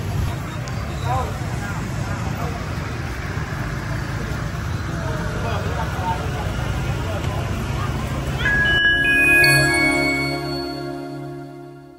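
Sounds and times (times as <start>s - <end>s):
crowd chatter: 0.0s - 11.9s
motorbike traffic rumble: 0.0s - 11.9s.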